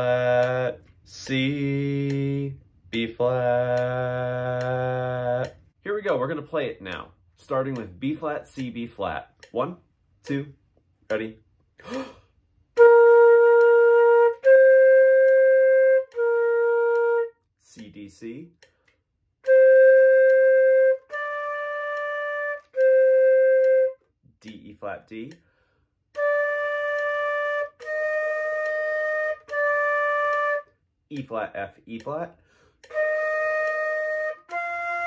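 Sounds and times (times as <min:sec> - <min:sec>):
flute sustained note: 0:12.8 - 0:17.4, 0:19.4 - 0:24.1, 0:26.2 - 0:30.7, 0:32.9 - 0:35.0.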